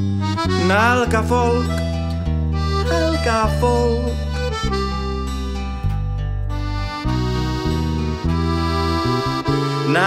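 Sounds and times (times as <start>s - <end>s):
accordion chords: 0.0s - 10.0s
acoustic guitar: 0.0s - 10.0s
double bass notes: 0.0s - 10.0s.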